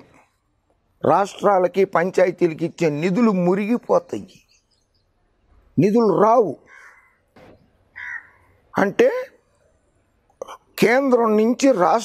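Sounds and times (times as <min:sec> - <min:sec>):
man speaking: 0:01.0 - 0:04.5, 0:05.7 - 0:06.7, 0:08.7 - 0:09.5, 0:10.4 - 0:12.0
crow cawing: 0:06.6 - 0:08.7.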